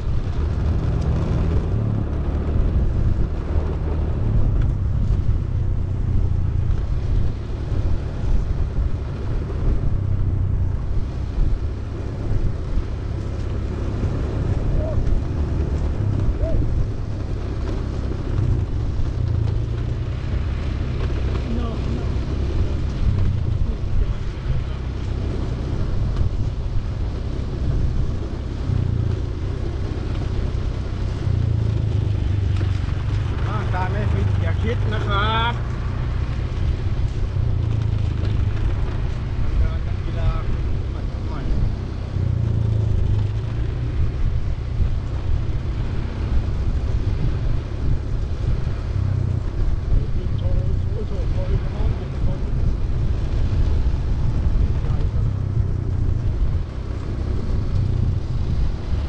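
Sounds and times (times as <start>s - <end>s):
skate wheels rolling on concrete: 0.0s - 59.0s
wind buffeting microphone: 0.0s - 59.0s.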